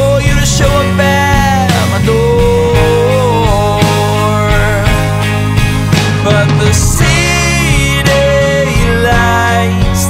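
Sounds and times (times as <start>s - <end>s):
folk-rock band playing: 0.0s - 10.0s.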